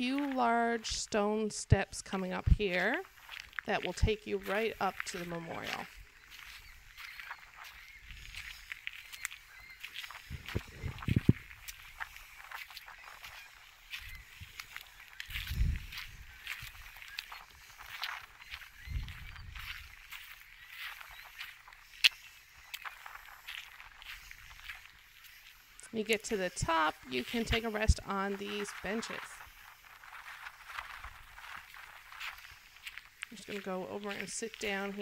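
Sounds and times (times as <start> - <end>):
footsteps crunching on gravel: 0.0 - 35.0.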